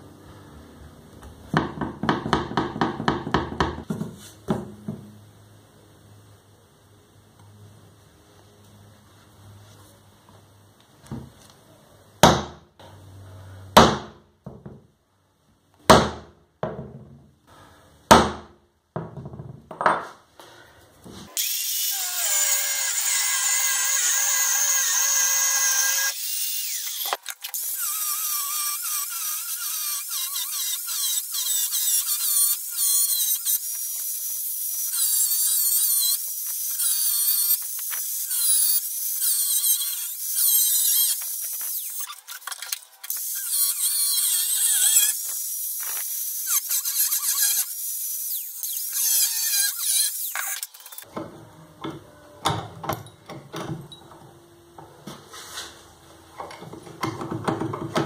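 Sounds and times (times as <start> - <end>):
angle grinder cutting steel: 21.3 - 51.1.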